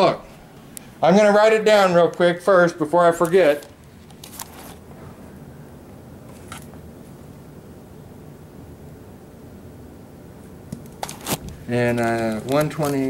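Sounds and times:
gas heater humming: 0:00.0 - 0:13.0.

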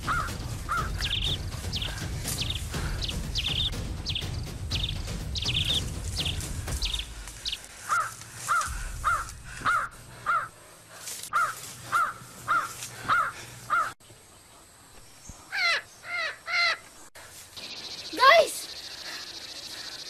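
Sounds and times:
bird calling: 0:00.0 - 0:14.0.

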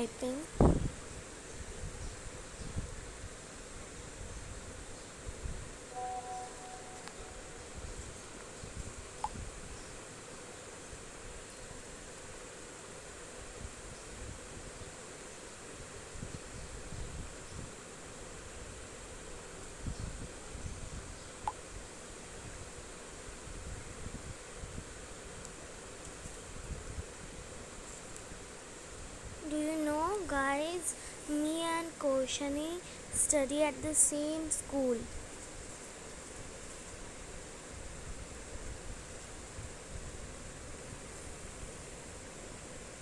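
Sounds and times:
background hiss: 0:00.0 - 0:43.0.

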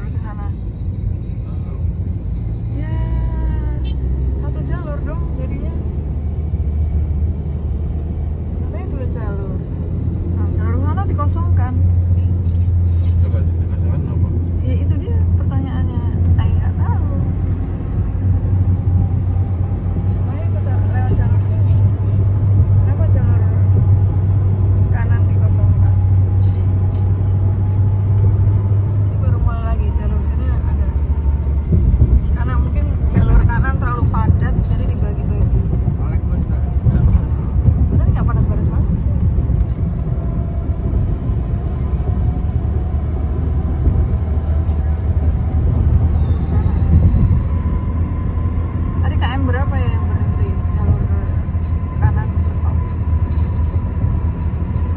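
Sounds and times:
road rumble inside car: 0:00.0 - 0:54.9.

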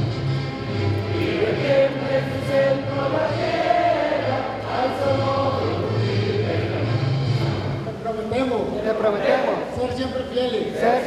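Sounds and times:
group singing in unison: 0:00.6 - 0:07.8, 0:09.2 - 0:09.7, 0:10.8 - 0:11.0.

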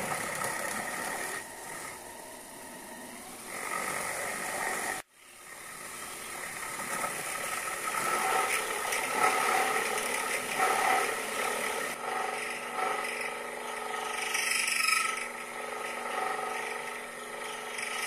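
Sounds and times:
end mill cutting metal: 0:00.0 - 0:18.0
milling machine motor whine: 0:00.0 - 0:18.0.

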